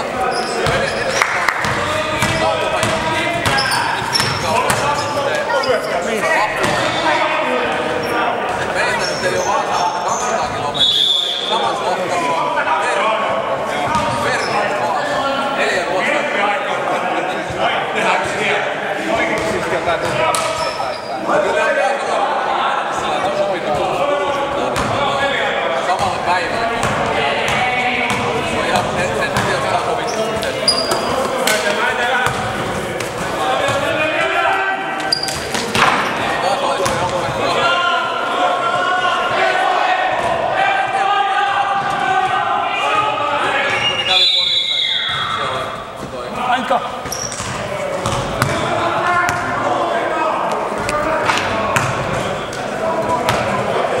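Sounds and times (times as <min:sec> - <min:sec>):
indistinct voices chattering: 0:00.0 - 0:54.0
basketball bouncing on hall floor: 0:00.5 - 0:05.2, 0:13.8 - 0:14.3, 0:24.7 - 0:25.0, 0:25.9 - 0:34.0, 0:35.0 - 0:37.5, 0:47.0 - 0:49.6, 0:50.7 - 0:53.6.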